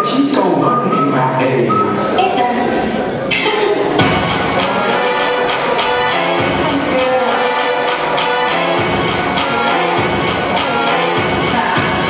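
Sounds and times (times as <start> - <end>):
dance music with regular beat: 3.3 - 12.0.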